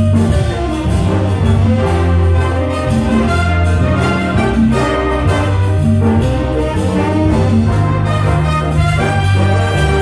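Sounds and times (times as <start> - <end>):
low bass line: 0.0 - 10.0
piano: 0.0 - 10.0
saxophones and brass chords: 0.0 - 10.0.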